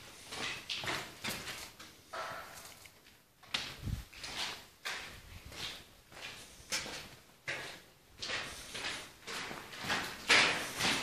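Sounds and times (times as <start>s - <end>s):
footsteps: 0.0s - 11.0s.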